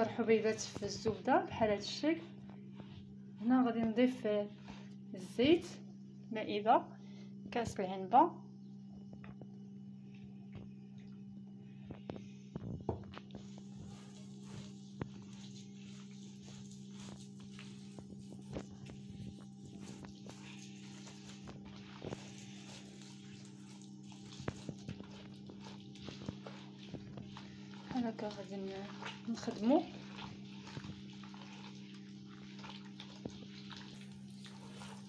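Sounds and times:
hand rubbing crumbly mixture: 13.3 - 35.0.

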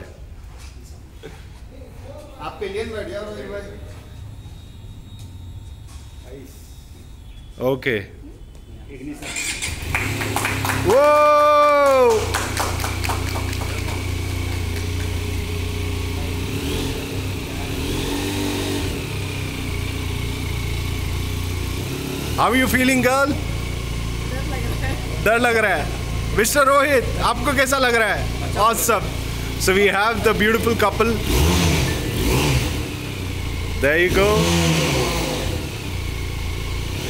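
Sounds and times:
motorcycle engine idling: 9.4 - 37.0.

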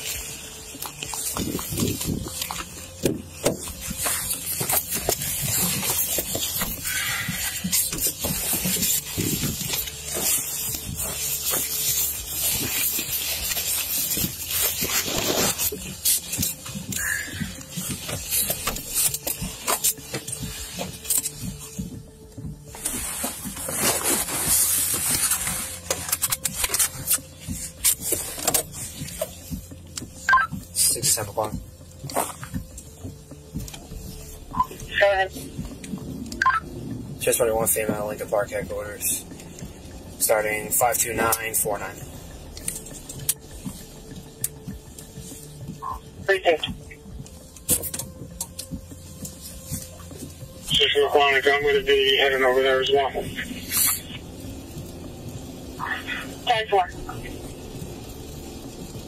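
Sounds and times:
body-worn camera rustling: 0.0 - 59.0
low steady hum: 0.0 - 59.0.

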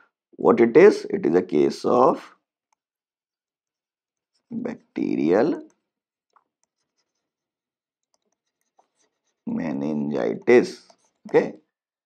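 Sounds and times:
stylus scratching on pen tablet: 6.6 - 11.6.

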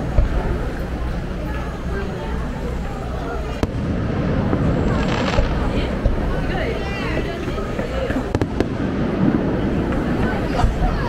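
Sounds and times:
crowd voices: 0.0 - 11.0
fireworks bursting: 0.0 - 11.0
sharp firework cracks: 3.4 - 6.8, 7.8 - 10.9.

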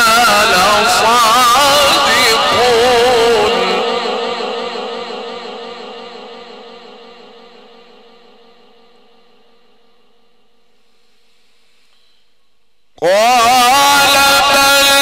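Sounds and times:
man reciting with heavy echo: 0.0 - 10.7, 12.9 - 15.0
background hiss: 10.4 - 13.0.

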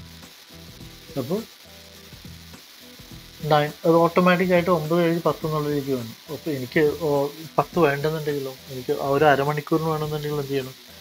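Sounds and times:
faint steady hiss: 0.0 - 11.0
person talking: 1.1 - 1.5, 3.4 - 10.8.

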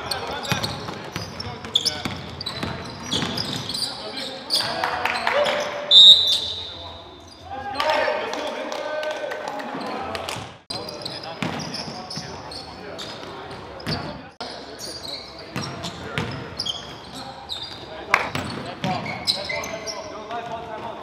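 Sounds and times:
players' voices echoing: 0.0 - 21.0
loud high-pitched squeak: 5.9 - 7.4.

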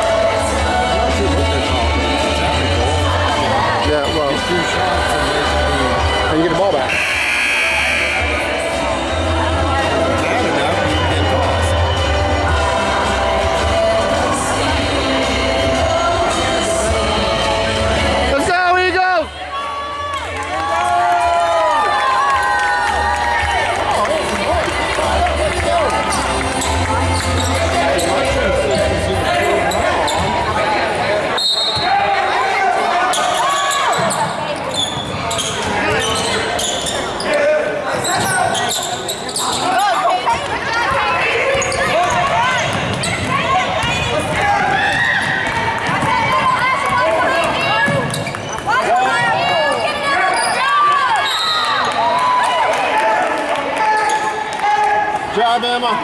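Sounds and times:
people calling out: 6.9 - 9.3.

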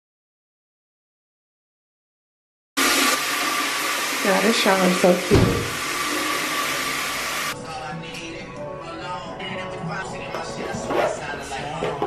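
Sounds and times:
shower running: 2.8 - 7.6.

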